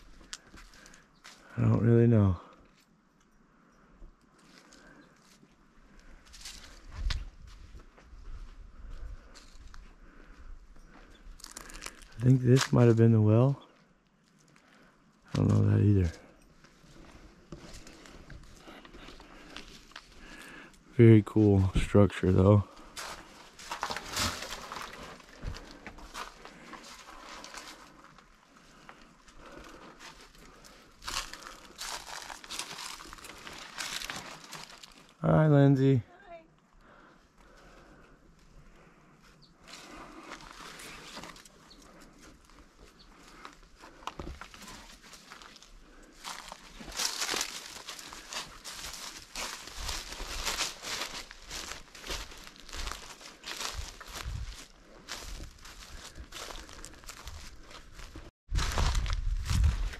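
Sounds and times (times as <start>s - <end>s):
footsteps crunching dry leaves: 6.3s - 7.9s, 11.4s - 12.8s, 15.4s - 20.6s, 22.6s - 35.2s, 39.6s - 59.9s.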